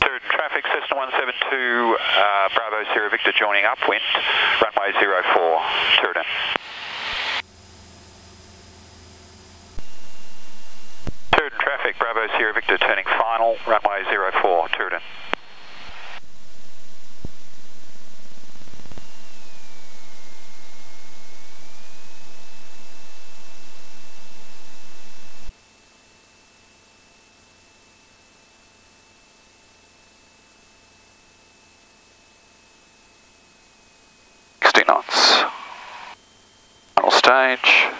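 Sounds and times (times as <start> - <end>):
voice over radio: 0.0 - 6.6, 11.3 - 15.2, 34.6 - 36.2, 37.0 - 37.9
steady radio hiss: 0.0 - 7.4, 9.8 - 25.5, 34.6 - 36.2, 36.9 - 37.9.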